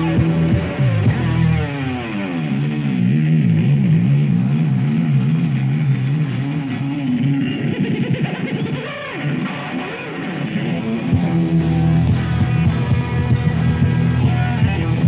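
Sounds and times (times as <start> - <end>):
bass guitar: 0.0 - 15.0
electric guitar with vibrato: 0.0 - 15.0.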